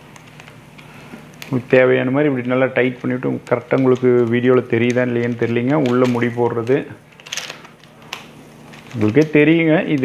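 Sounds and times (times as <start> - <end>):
plastic crackles: 0.0 - 10.0
plastic tape crinkling: 3.1 - 10.0.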